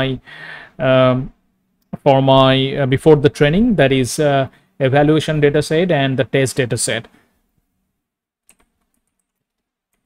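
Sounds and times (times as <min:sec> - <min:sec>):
faint keyboard keystrokes: 0:08.5 - 0:10.0.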